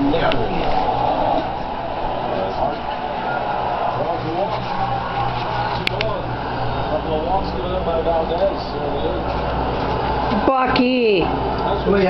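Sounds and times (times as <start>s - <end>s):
muffled indistinct voices: 0.0s - 12.0s
steady low hum: 0.0s - 12.0s.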